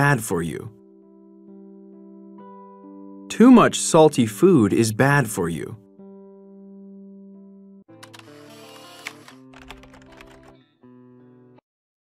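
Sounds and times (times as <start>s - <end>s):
background music: 0.0s - 11.6s.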